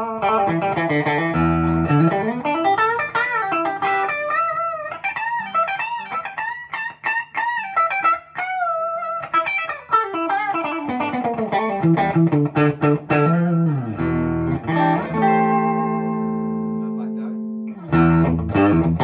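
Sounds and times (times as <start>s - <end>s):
electric guitar lead solo: 0.0s - 19.0s.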